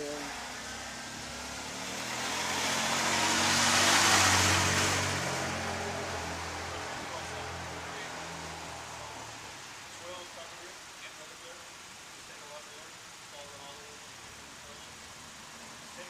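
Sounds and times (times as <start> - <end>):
car driving past: 0.0 - 9.7.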